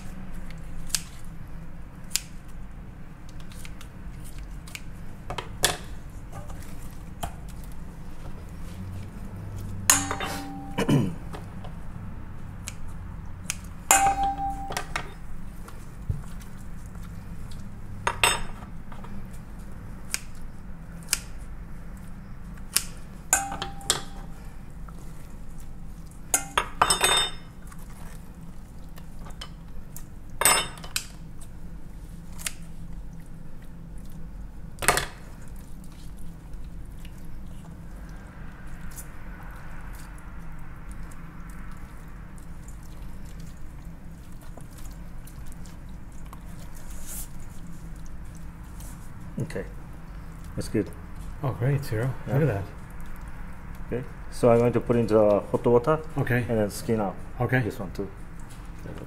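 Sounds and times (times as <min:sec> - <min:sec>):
steady low hum: 0:00.0 - 0:59.0
steel mixing bowl clinking: 0:09.9 - 0:10.8, 0:13.9 - 0:15.2, 0:23.3 - 0:24.3.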